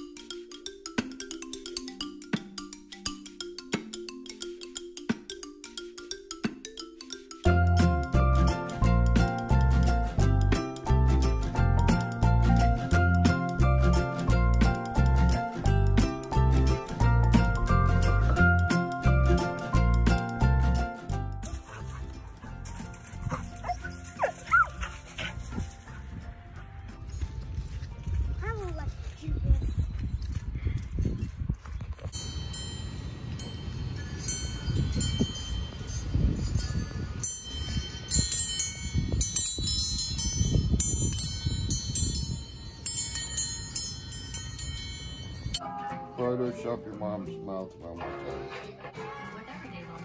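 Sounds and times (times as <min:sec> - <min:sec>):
wind rumble on microphone: 0:23.0 - 0:43.4
metal wind chime tinkling: 0:32.1 - 0:46.6.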